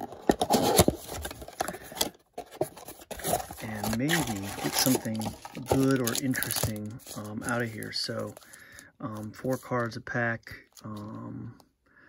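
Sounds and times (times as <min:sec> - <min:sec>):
cardboard scraping and rustling: 0:00.0 - 0:08.5.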